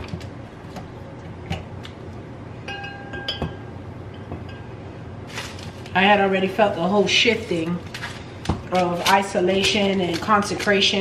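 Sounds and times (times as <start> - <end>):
light ringing clink: 2.7 - 4.7.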